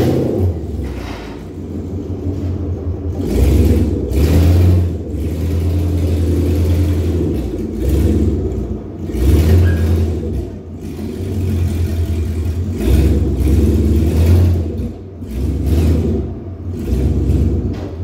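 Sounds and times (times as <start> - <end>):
truck engine revving: 0.0 - 18.0.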